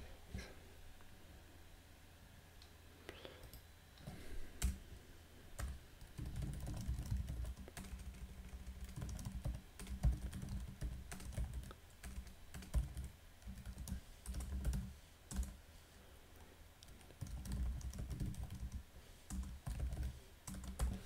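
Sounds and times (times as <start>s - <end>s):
typing on computer keyboard: 5.6s - 15.6s, 16.9s - 21.0s.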